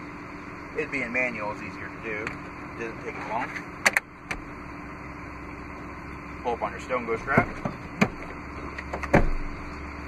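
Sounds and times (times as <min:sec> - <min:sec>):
steady low hum with faint tone: 0:00.0 - 0:10.0
seat hardware click: 0:03.8 - 0:04.4, 0:07.3 - 0:09.4.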